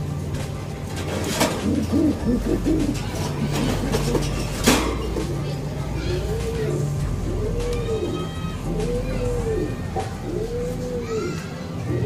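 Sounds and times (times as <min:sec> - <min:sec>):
pigeons cooing: 0:00.9 - 0:12.0.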